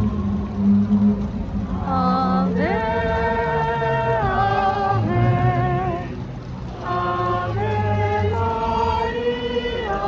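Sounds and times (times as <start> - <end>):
low hum: 0.0 - 10.0
group singing a hymn: 1.8 - 10.0.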